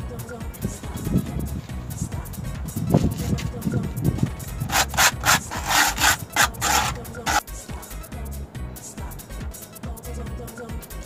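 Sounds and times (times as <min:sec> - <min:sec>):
sandpaper scratching on cement: 0:02.8 - 0:03.5, 0:04.5 - 0:07.4.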